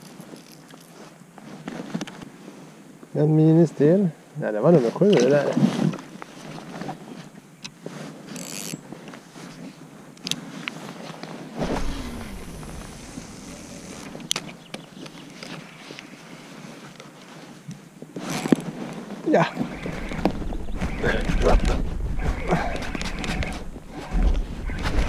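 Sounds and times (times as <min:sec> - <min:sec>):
clothing and fishing gear rustling: 0:00.0 - 0:03.1, 0:04.8 - 0:25.0
low rumble: 0:11.6 - 0:14.7, 0:19.7 - 0:25.0.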